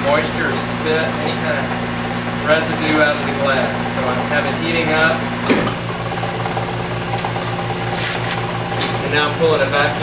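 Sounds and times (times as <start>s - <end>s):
low pulsing machine hum: 0.0s - 10.0s
transformer electrical hum: 0.0s - 10.0s.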